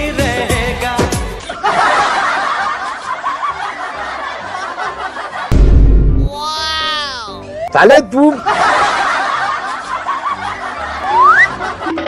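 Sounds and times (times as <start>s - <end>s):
background music with low held notes: 0.0s - 12.0s
crowd laughing: 1.4s - 5.5s, 8.2s - 12.0s.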